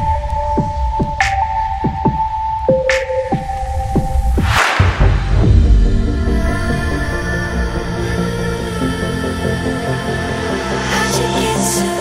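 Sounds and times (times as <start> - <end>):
throbbing sub-bass: 4.0 - 8.8
rising noise swell: 4.2 - 7.4
sharp snare hits: 4.4 - 5.6.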